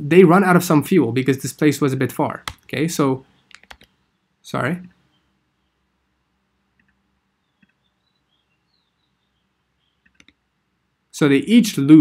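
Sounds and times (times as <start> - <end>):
faint computer mouse clicks: 6.8 - 7.0, 10.0 - 10.4.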